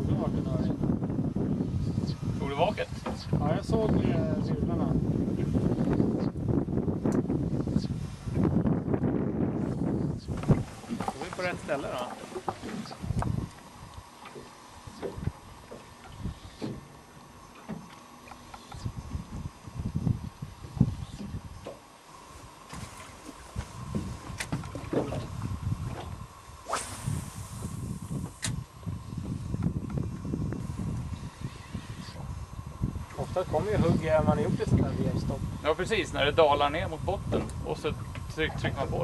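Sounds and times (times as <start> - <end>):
water around boat: 0.0 - 39.0
wind: 0.0 - 39.0
short high hiss: 26.6 - 29.5.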